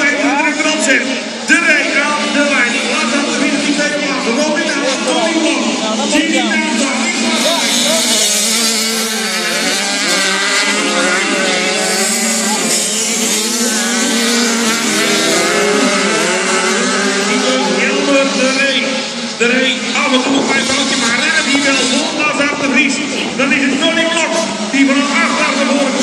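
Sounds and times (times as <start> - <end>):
racing motorcycle engines revving: 0.0 - 26.0.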